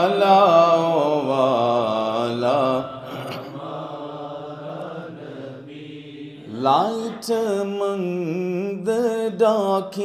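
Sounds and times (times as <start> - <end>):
man chanting: 0.0 - 3.5, 6.4 - 10.0.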